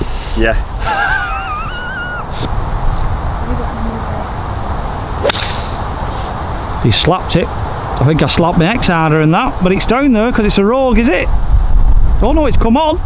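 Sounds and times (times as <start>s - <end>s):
wind noise on microphone: 0.0s - 13.0s
golf club striking ball: 5.2s - 6.0s.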